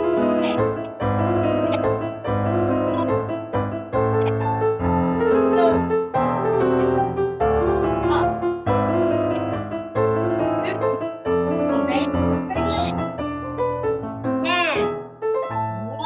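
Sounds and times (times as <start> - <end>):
piano playing a waltz: 0.0 - 16.0.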